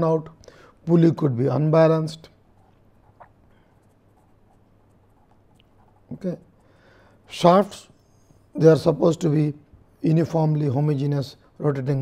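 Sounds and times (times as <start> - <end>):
low steady hum: 0.0 - 12.0
marker writing on paper: 2.4 - 6.2.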